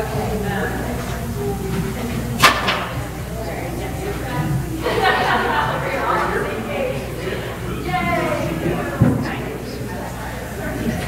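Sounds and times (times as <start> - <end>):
low murmured talk: 0.0 - 11.0.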